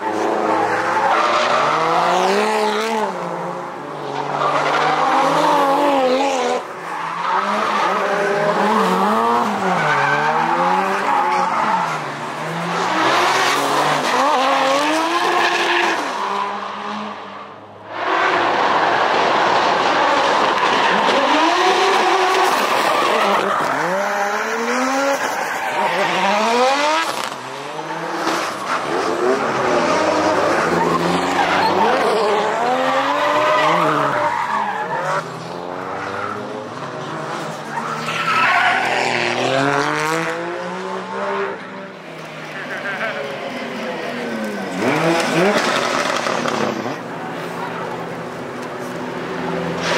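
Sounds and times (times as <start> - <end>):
car engines revving: 0.0 - 49.9.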